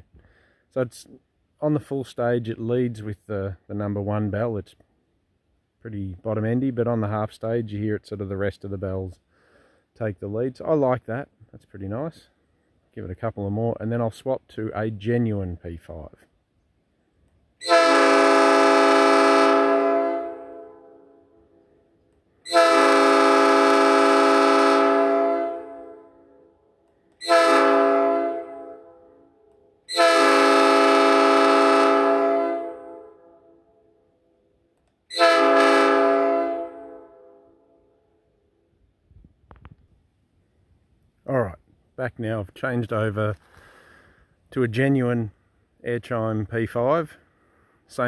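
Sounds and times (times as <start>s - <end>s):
air horn chord blasts: 17.6s - 21.3s, 22.4s - 26.3s, 27.2s - 29.2s, 29.9s - 33.4s, 35.1s - 37.6s.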